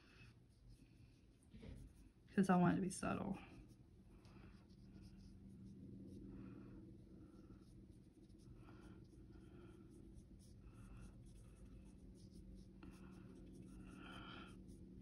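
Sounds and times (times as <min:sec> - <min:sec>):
brush strokes on damp paper: 0:00.0 - 0:15.0
low steady hum: 0:00.0 - 0:15.0.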